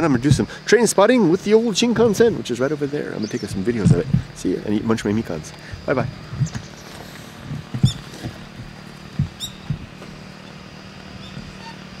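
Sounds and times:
dull bumps: 0:00.0 - 0:00.6, 0:01.4 - 0:12.0
steady low hum: 0:00.0 - 0:12.0.

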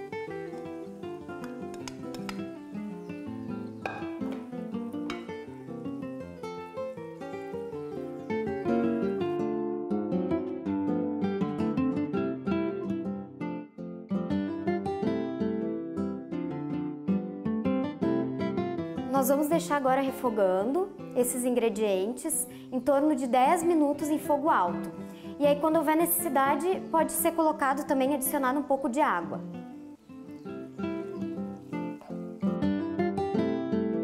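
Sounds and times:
acoustic guitar tune: 0:00.0 - 0:34.0.

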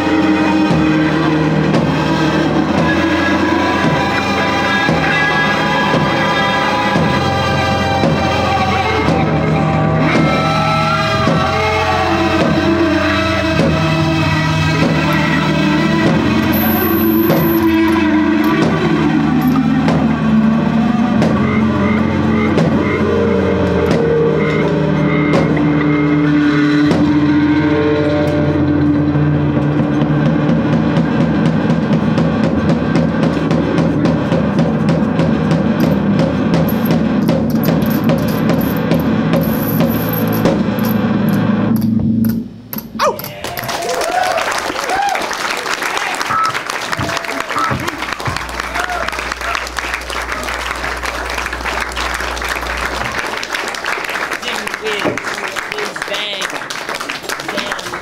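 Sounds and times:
live band playing: 0:00.0 - 0:41.5, 0:45.4 - 0:58.0
audience applause: 0:43.3 - 0:58.0.

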